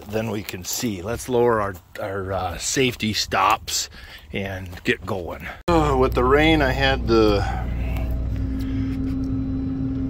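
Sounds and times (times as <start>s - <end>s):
harvester engine humming: 5.4s - 10.0s
steady tone: 5.7s - 10.0s.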